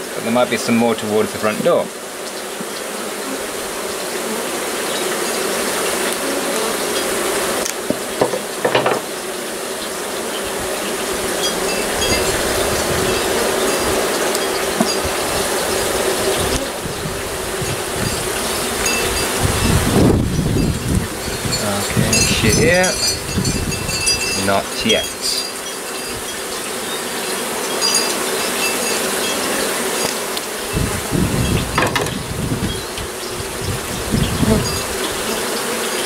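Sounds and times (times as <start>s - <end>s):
honey bees buzzing: 0.0s - 36.0s.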